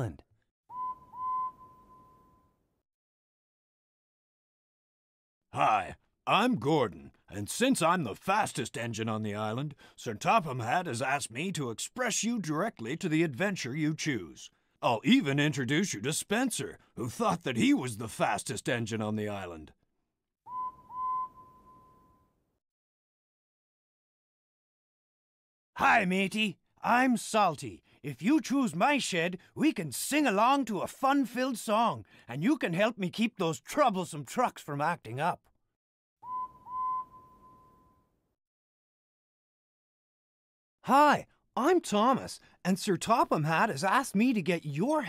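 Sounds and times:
cartoon steam engine whistle: 0.7 - 2.5, 20.5 - 22.2, 36.2 - 38.0.

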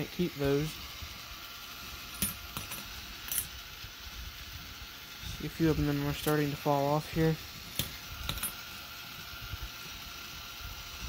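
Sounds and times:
coins clinking: 2.1 - 3.5, 7.8 - 8.6.

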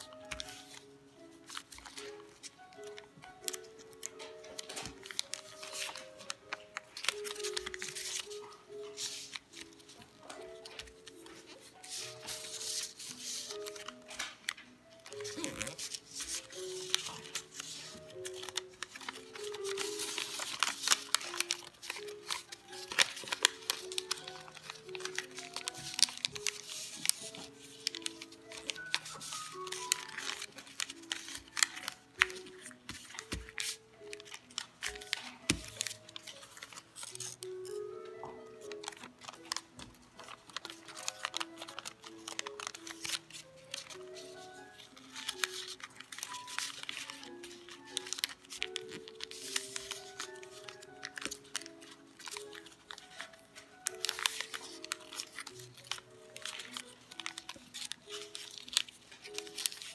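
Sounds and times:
background music of stepped notes: 0.0 - 59.9
paper crinkling as folded: 0.0 - 59.9.

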